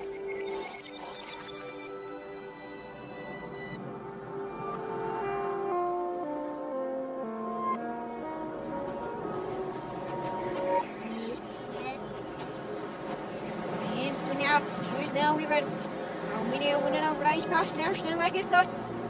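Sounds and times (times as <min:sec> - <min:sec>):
reversed film score: 0:00.0 - 0:19.0.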